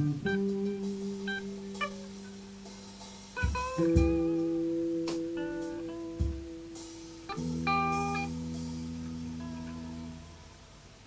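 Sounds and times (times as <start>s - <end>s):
high plucked guitar notes: 0.0s - 10.6s
electric guitar low sustained note: 0.0s - 10.8s.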